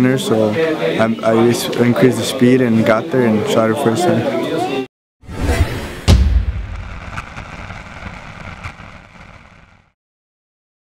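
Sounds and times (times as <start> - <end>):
deep boom with rumbling tail: 5.5 - 9.3.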